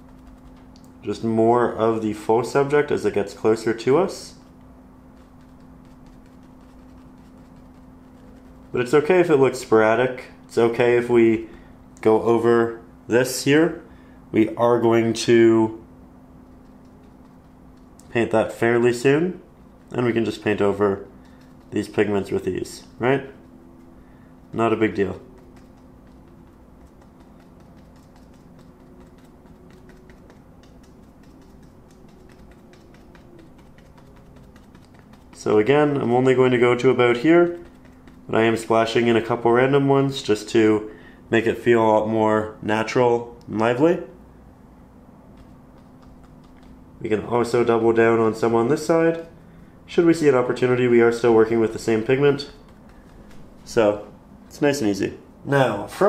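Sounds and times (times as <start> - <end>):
low electrical hum: 0.0 - 56.0
paintbrush tapping on canvas: 16.5 - 18.0, 24.4 - 36.0, 37.4 - 38.3, 45.3 - 46.8, 51.8 - 53.7.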